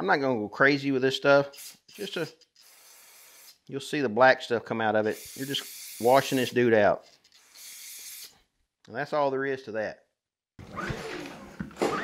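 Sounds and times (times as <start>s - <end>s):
man speaking: 3.7s - 7.0s, 8.9s - 10.0s.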